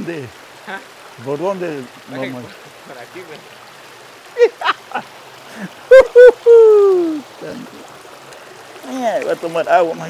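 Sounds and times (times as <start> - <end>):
creek rushing over stones: 0.0 - 10.0
man's wordless voice: 8.8 - 10.0.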